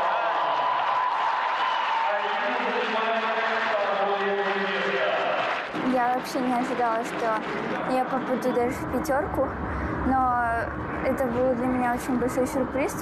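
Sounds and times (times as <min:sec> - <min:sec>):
man announcing: 0:02.0 - 0:05.5.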